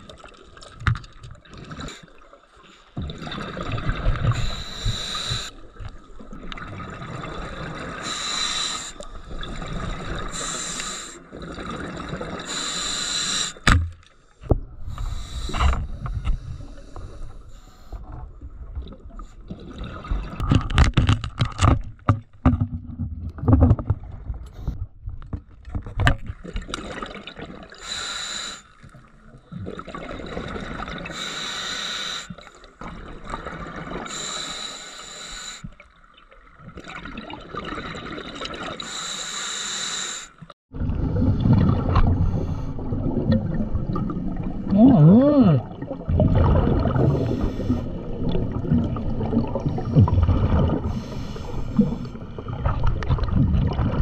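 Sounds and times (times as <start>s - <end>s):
diver breathing through regulator: 4.3s - 5.6s, 8.0s - 9.1s, 10.3s - 11.3s, 12.4s - 13.7s, 14.8s - 18.0s, 27.8s - 28.7s, 31.1s - 32.4s, 34.1s - 35.7s, 38.8s - 40.4s, 47.0s - 48.0s, 50.8s - 52.3s
bubbling rumble: 40.7s - 54.0s.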